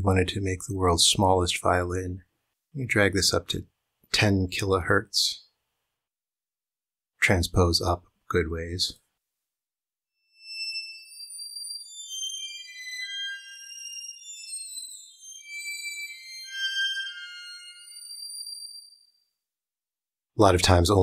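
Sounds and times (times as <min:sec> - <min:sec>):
very high thin synth string notes: 0:10.4 - 0:19.0.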